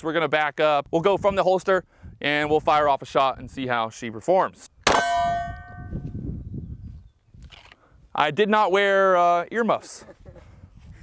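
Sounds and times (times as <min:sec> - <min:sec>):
pistol shot: 0:04.9 - 0:05.8
steel target ringing: 0:04.9 - 0:06.2.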